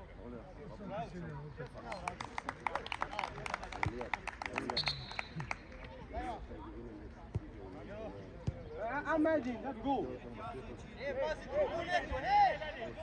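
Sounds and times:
hands clapping quickly: 0:01.6 - 0:05.9.

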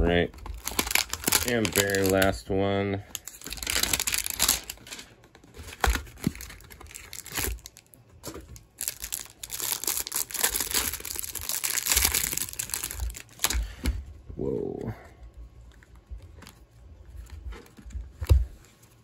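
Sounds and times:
plastic wrap crinkling and tearing: 0:00.2 - 0:13.8.

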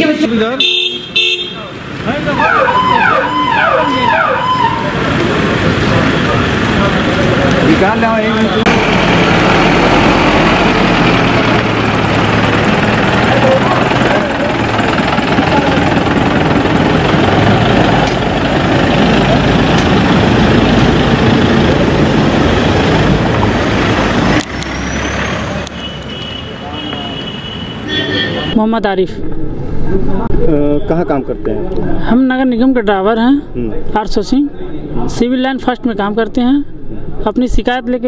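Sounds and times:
crowd voices: 0:02.0 - 0:17.2
car engines pulling away: 0:03.7 - 0:27.6.

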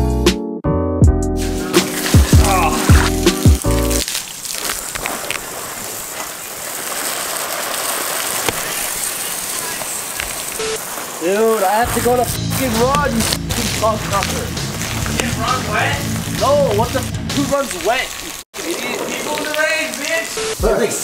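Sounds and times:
background music with a beat: 0:00.0 - 0:04.0
water spraying from a hose: 0:01.3 - 0:21.0.

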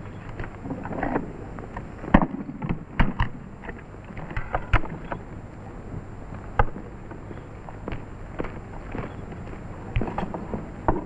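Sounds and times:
film soundtrack hiss: 0:00.0 - 0:11.0.

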